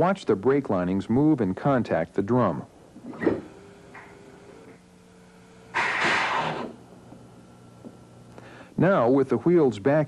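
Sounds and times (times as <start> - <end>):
air brake hiss: 5.8 - 6.8.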